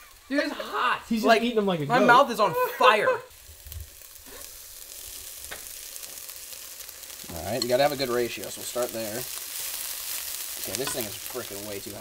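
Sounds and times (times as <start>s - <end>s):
food sizzling in a skillet: 0.0s - 12.0s.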